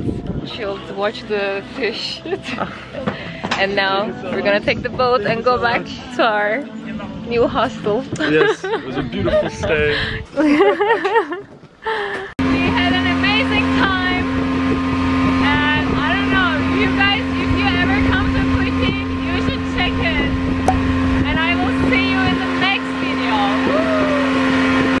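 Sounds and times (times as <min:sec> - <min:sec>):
boat engine running: 0:00.0 - 0:10.2, 0:12.4 - 0:25.0.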